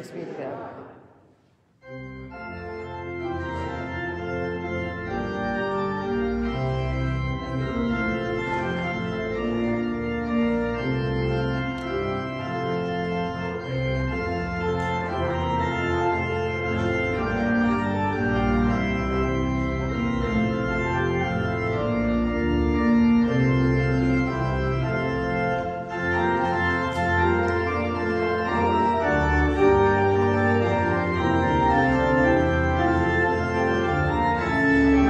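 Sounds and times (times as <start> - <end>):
church organ chords: 1.8 - 35.0.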